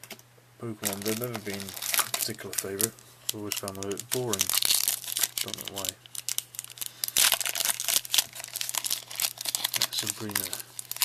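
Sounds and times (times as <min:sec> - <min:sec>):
foil wrapper tearing and crinkling: 0:00.8 - 0:11.0.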